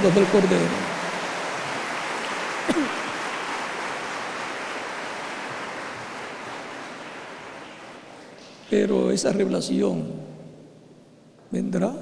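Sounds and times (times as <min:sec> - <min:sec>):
congregation applauding: 0:00.0 - 0:09.0.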